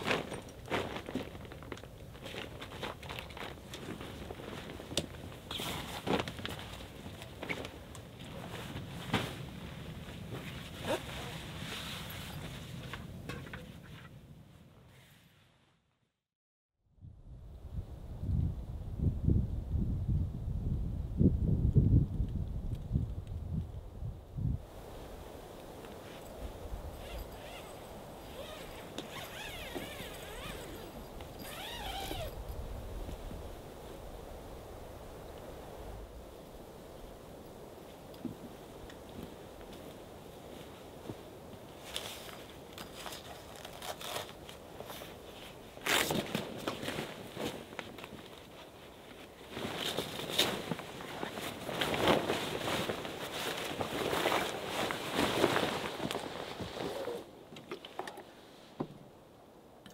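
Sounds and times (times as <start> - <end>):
fabric rustling: 0.0 - 13.1, 26.0 - 32.5, 40.4 - 57.3.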